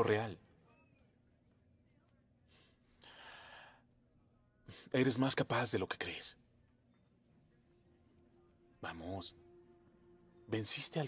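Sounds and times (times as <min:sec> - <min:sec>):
person breathing: 0:02.5 - 0:03.9.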